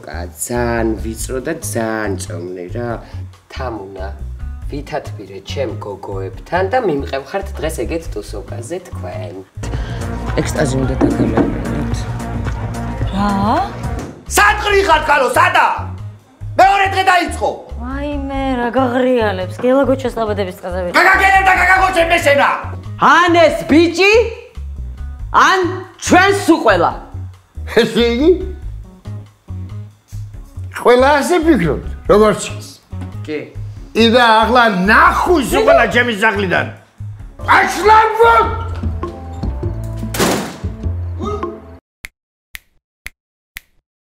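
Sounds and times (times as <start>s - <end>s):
background music with bass pulse: 7.5s - 15.1s
woman speaking: 13.1s - 13.7s, 17.8s - 21.0s
finger snaps: 42.6s - 43.8s.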